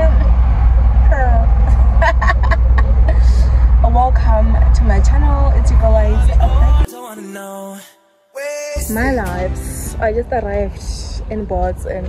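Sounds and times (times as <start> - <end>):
car engine rumble: 0.0 - 6.9, 8.8 - 12.0
road noise: 0.0 - 6.9, 8.8 - 12.0
woman laughing: 1.7 - 3.6.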